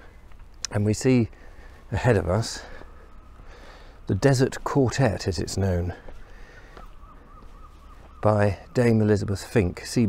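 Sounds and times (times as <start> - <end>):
bird calling faintly: 0.0 - 10.0.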